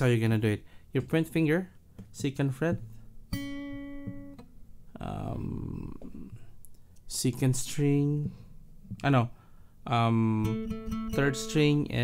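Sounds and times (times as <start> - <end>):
acoustic guitar string plucked: 2.8 - 6.6, 10.4 - 11.8.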